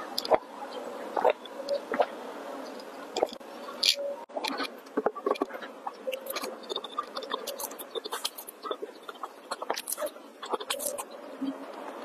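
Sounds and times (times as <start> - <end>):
wet mouth clicks and squelches: 3.1 - 11.6.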